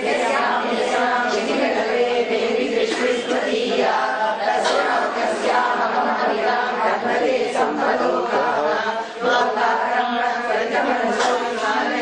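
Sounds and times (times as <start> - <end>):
voices chanting a hymn: 0.0 - 12.0.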